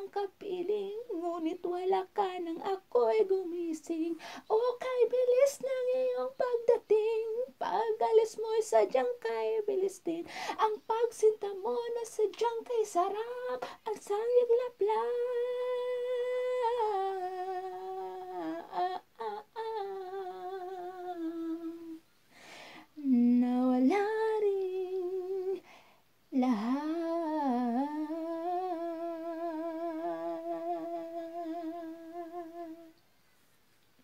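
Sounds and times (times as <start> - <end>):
woman singing: 0.0 - 22.0, 23.0 - 25.7, 26.3 - 33.0.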